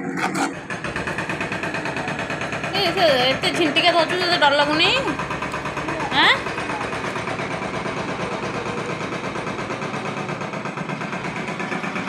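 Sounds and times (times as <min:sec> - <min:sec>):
motor running with fast pulse: 0:00.0 - 0:12.0.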